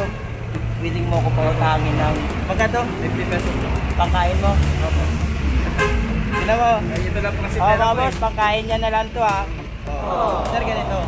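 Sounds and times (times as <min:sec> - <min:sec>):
low rumble of vehicles: 0:00.0 - 0:11.0.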